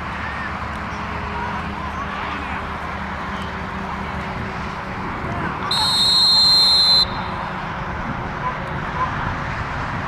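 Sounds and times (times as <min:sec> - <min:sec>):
referee's whistle: 0:05.7 - 0:07.4.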